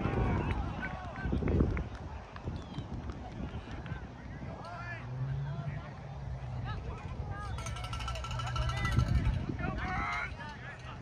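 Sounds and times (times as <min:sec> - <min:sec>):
wind rumble on microphone: 0:00.0 - 0:11.0
distant shouts and calls: 0:03.5 - 0:11.0.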